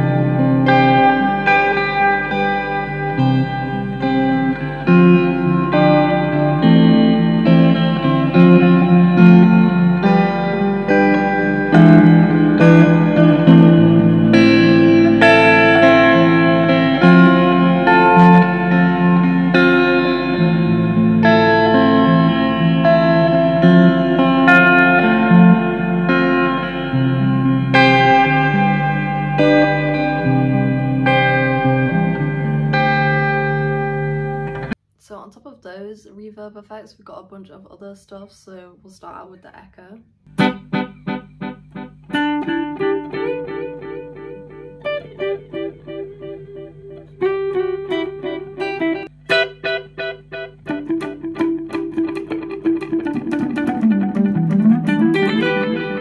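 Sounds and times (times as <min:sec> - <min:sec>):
electric guitar chords with reverb: 0:00.0 - 0:34.8, 0:40.3 - 0:56.0
woman talking: 0:35.0 - 0:40.1.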